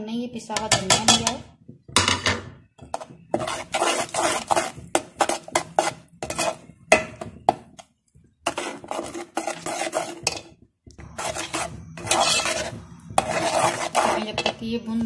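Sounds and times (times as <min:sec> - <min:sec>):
metal spoon scraping a pan: 0:00.5 - 0:01.4, 0:02.0 - 0:15.0.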